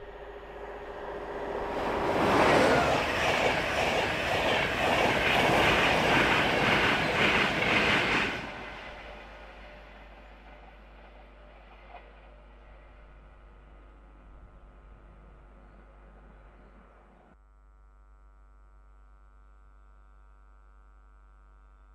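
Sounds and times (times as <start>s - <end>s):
train passing at high speed: 0.0s - 17.4s
wheels clattering over rails: 0.5s - 17.2s.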